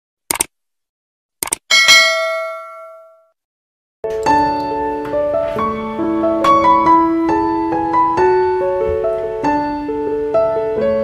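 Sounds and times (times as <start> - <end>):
notification bell chime: 1.7 - 3.2.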